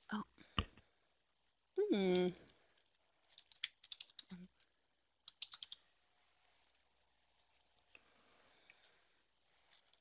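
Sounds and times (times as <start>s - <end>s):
keyboard keys clicking: 5.3s - 5.8s.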